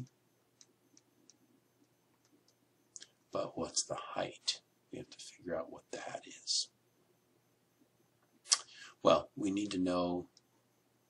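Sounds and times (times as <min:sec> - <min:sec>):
mouth click: 0:02.5 - 0:03.1, 0:08.5 - 0:08.8.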